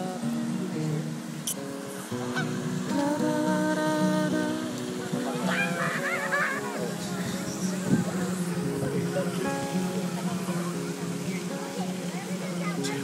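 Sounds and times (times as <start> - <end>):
background guitar music: 0.0 - 13.0
goose honking: 2.2 - 2.6, 5.3 - 6.9.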